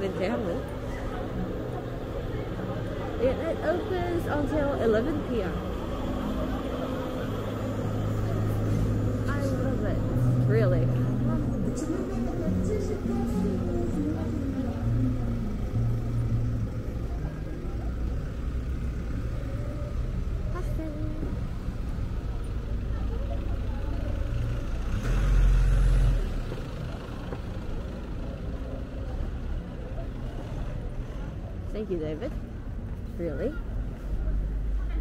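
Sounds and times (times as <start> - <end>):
faint voices of passers-by: 0.0 - 35.0
low rumble of traffic: 0.0 - 35.0.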